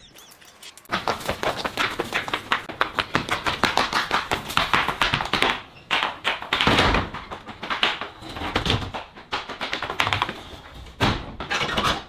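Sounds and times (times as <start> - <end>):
running footsteps on concrete: 0.9 - 11.4.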